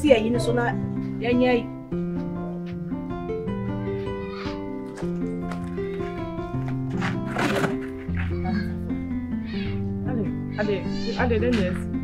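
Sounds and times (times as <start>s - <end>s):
background music: 0.0s - 12.0s
cat meowing: 4.0s - 4.7s, 9.4s - 9.8s, 10.5s - 11.8s.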